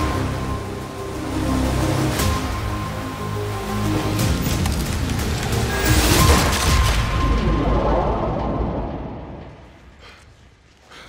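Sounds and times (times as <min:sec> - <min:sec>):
trailer score with heavy booms: 0:00.0 - 0:10.7.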